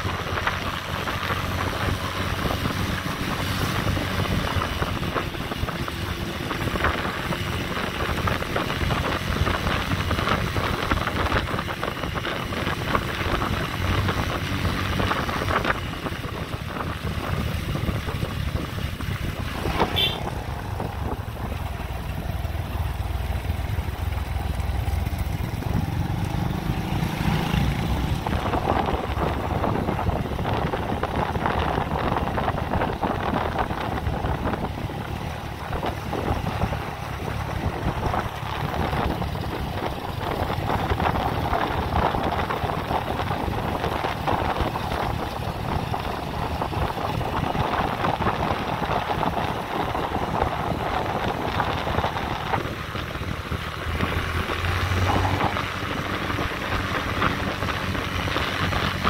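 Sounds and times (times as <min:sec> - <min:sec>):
motorbike engine running: 0:00.0 - 0:59.0
wind rushing over microphone: 0:00.0 - 0:59.0.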